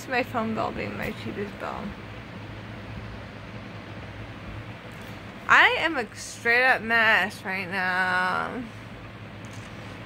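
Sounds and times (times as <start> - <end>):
fan hiss and hum: 0.0 - 10.0.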